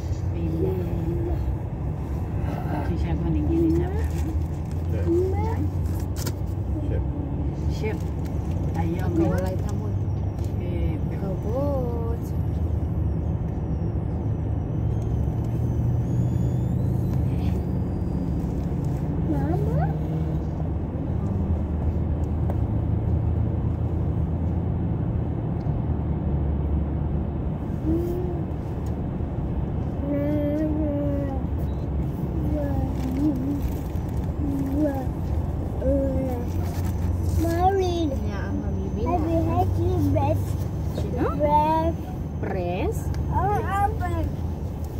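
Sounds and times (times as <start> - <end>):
people talking: 0.0 - 1.5, 2.4 - 4.3, 4.9 - 5.8, 7.7 - 12.4, 19.3 - 20.3, 32.3 - 33.8, 34.4 - 35.2, 35.8 - 36.6, 37.2 - 44.4
car driving rumble from inside: 0.0 - 44.9.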